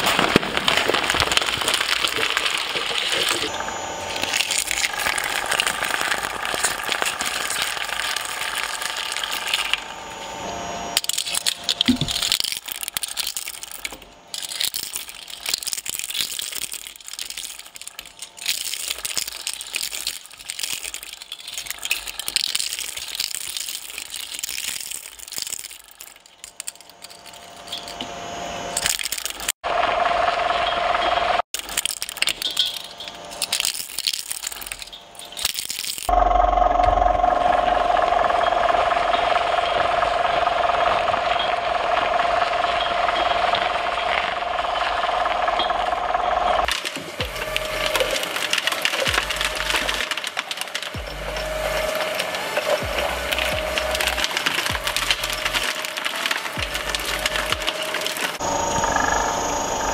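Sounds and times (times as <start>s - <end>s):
shredder motor whine and grinding: 0.0s - 32.1s, 36.1s - 59.9s
shredder cracking toy cars: 0.0s - 58.8s.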